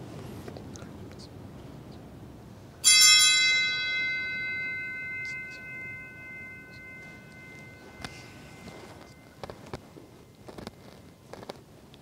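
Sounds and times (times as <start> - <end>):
altar bell ringing: 2.8 - 9.7.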